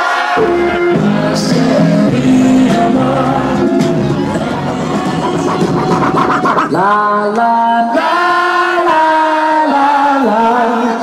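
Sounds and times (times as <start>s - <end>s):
turntable scratching: 1.6s - 7.1s
voice-like musical tone: 2.1s - 7.2s.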